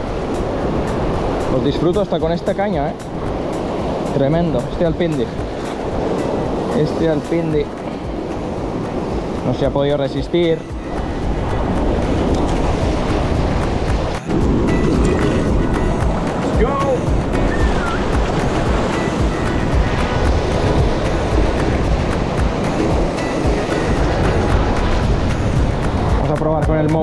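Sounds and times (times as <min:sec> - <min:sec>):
background music: 0:00.0 - 0:27.0
surf washing over rocks: 0:00.0 - 0:27.0.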